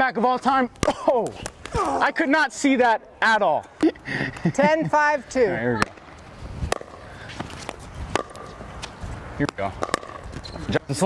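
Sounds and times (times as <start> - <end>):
pickleball being hit and bouncing: 0.4 - 2.1, 5.7 - 11.0.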